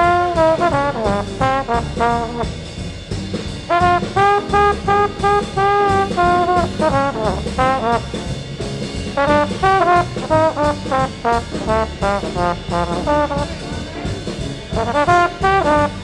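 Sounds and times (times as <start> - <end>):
horn solo: 0.0 - 2.8, 3.7 - 8.3, 9.2 - 16.0
small jazz band playing: 0.0 - 16.0.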